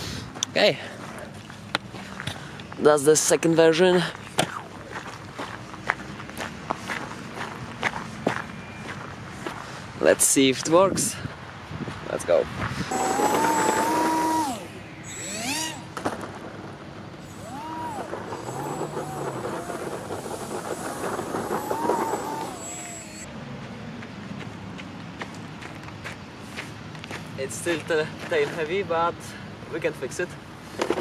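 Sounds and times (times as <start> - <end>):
model motor and propeller whining: 12.9 - 16.0, 17.2 - 23.3.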